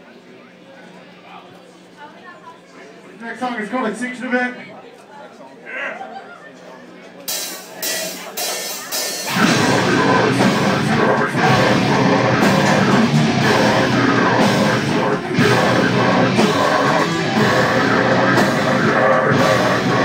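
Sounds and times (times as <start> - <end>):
sharp drum hits: 7.3 - 17.8
metal band playing live: 7.3 - 20.0.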